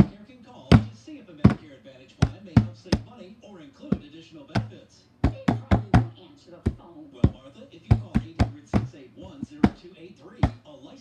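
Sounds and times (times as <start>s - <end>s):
knocks on a hard surface: 0.0s - 3.2s, 3.9s - 10.6s.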